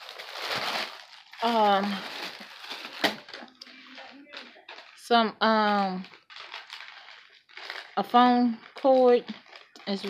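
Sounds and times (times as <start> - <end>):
cable rustling and crinkling: 0.0 - 10.0.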